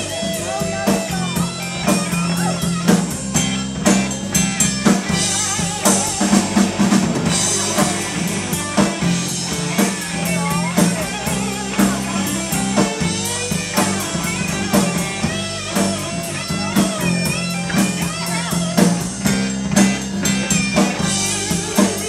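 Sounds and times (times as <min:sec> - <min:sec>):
bass guitar: 0:00.0 - 0:22.0
drum kit steady beat: 0:00.0 - 0:22.0
electric guitar: 0:00.0 - 0:22.0.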